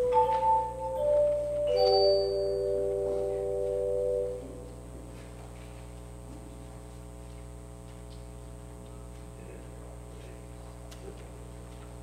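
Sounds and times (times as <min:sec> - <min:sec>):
keyboard music with held chords: 0:00.0 - 0:04.8.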